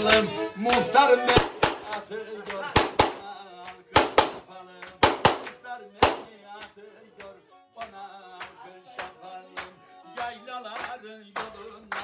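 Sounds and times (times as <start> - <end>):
sharp percussive hits: 4.0 - 6.3.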